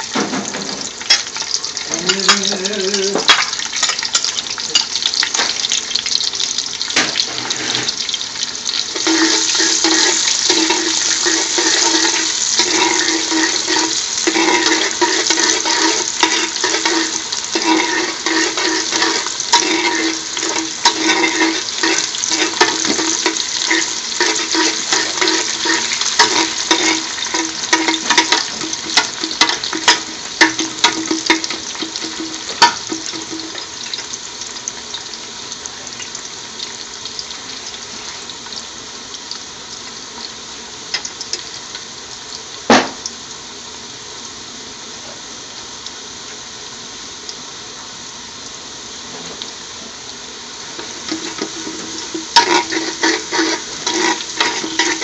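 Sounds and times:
garlic sizzling in hot oil: 0:00.0 - 0:55.0
utensil scraping a metal pot: 0:08.9 - 0:34.0, 0:50.8 - 0:55.0.

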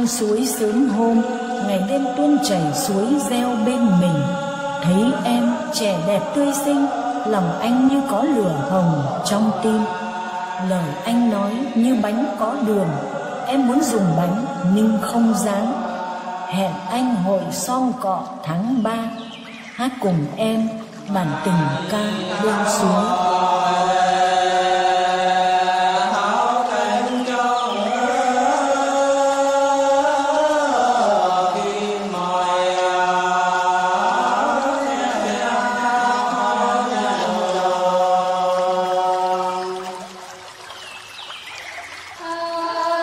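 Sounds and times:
women singing folk song: 0:00.0 - 0:43.0.

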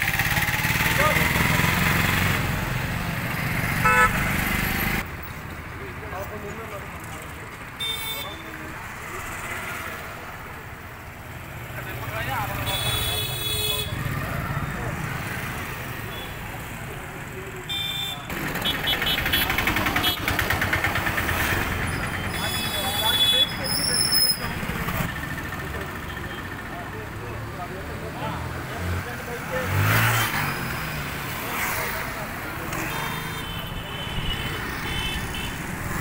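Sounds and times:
engine passing close by: 0:00.0 - 0:05.0
motorcycles passing: 0:00.0 - 0:36.0
street traffic: 0:00.0 - 0:36.0
vehicle horns tooting: 0:03.8 - 0:04.4, 0:07.8 - 0:08.6, 0:12.5 - 0:14.2, 0:17.7 - 0:20.5, 0:21.8 - 0:24.4, 0:32.8 - 0:35.6.

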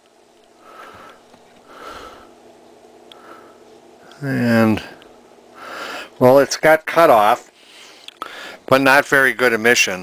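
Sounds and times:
faint steady hum: 0:00.0 - 0:10.0
man breathing through nose: 0:00.6 - 0:02.4, 0:05.5 - 0:06.2, 0:07.6 - 0:08.6.

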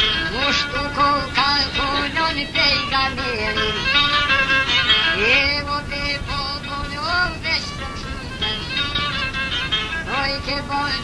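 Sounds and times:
man singing folk song: 0:00.0 - 0:09.3, 0:09.9 - 0:11.0
violin: 0:00.0 - 0:11.0.

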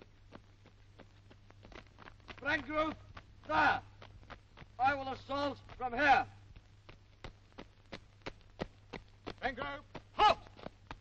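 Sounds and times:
boots running on hard ground: 0:00.0 - 0:11.0
shouted command: 0:03.5 - 0:03.9, 0:09.5 - 0:10.5.

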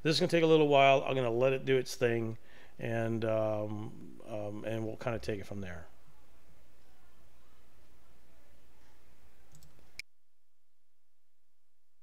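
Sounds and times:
faint clicks: 0:08.8 - 0:10.1.

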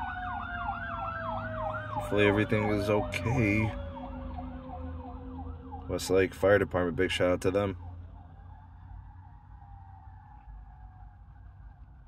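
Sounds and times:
distant fire engine siren: 0:00.0 - 0:12.0
low car rumble: 0:00.0 - 0:12.0.

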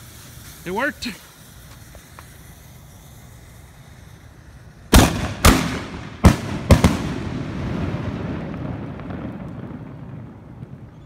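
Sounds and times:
burning fuses hissing: 0:00.0 - 0:10.5.

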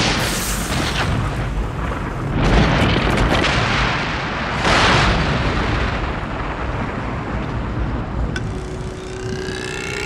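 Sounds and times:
steady rumble: 0:07.9 - 0:10.0
rising whine: 0:08.4 - 0:10.0
steady hum: 0:08.4 - 0:10.0.

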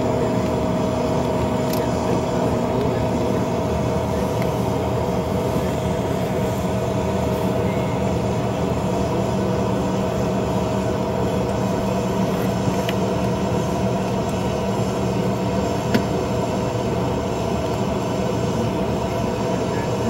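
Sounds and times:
jet engine drone with whine: 0:00.0 - 0:20.0.

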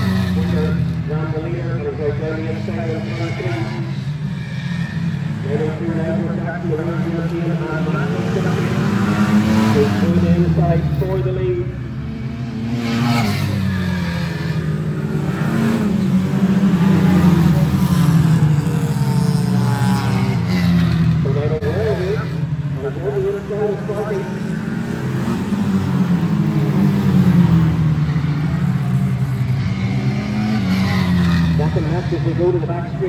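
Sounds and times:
racing car engines: 0:00.0 - 0:33.0.

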